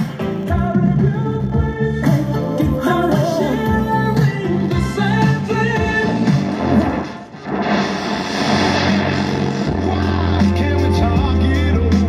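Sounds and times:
radio playing music with singing: 0:00.0 - 0:12.0
radio hiss: 0:06.5 - 0:10.3.

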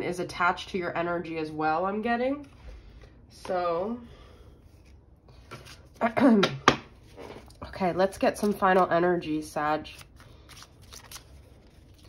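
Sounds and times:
cards being shuffled: 0:04.7 - 0:09.0, 0:09.8 - 0:12.0.

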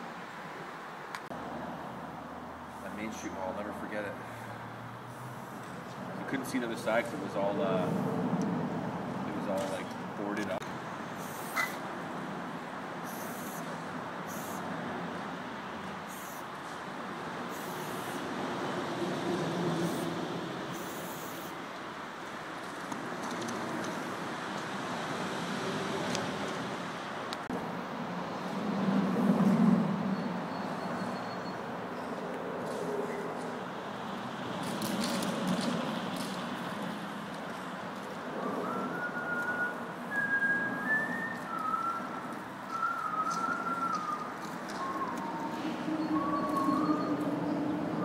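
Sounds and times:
traffic hum: 0:00.0 - 0:48.0
spray paint can hissing: 0:13.1 - 0:13.7, 0:14.3 - 0:14.6, 0:16.1 - 0:16.5, 0:17.5 - 0:18.2, 0:20.7 - 0:21.6.

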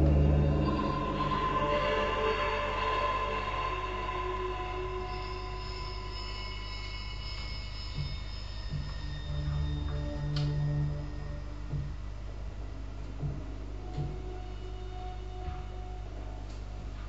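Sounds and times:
low bass notes: 0:00.0 - 0:02.0, 0:08.0 - 0:17.0
sustained synthesizer tones: 0:00.0 - 0:16.8.

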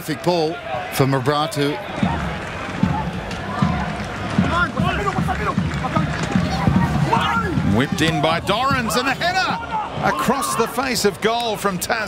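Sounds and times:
crowd murmur: 0:00.0 - 0:12.0
people calling and shouting: 0:00.0 - 0:12.0.

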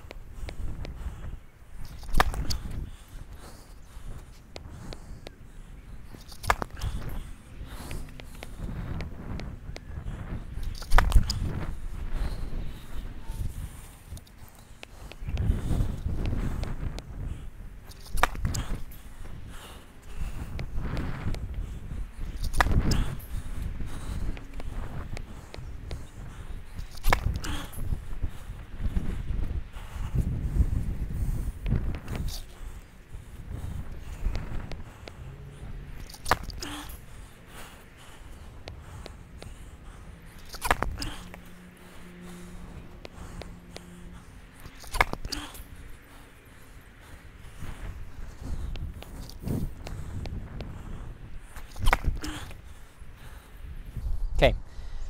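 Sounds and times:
wind rumble on microphone: 0:00.0 - 0:55.0
racket striking tennis ball: 0:44.8 - 0:45.3.

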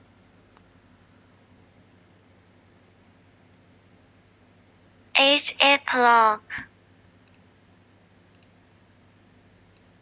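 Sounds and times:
computer mouse clicks: 0:07.2 - 0:07.5, 0:08.3 - 0:08.6, 0:09.7 - 0:10.0.

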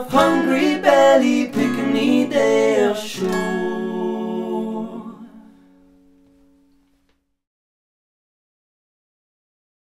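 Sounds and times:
acoustic guitar chord ringing: 0:00.0 - 0:07.1.

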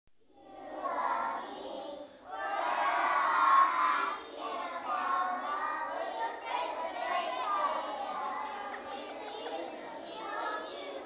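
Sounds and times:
children singing in unison: 0:00.3 - 0:11.0.

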